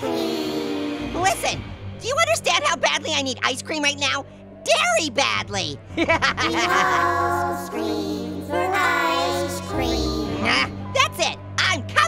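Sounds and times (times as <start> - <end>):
low music drone: 5.7 - 11.6.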